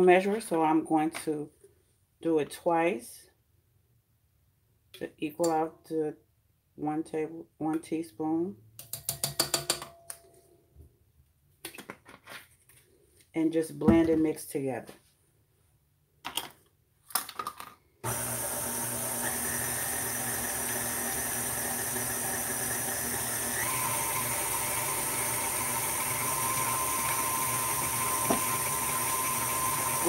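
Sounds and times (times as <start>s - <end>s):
electric stand mixer running: 18.0s - 30.0s.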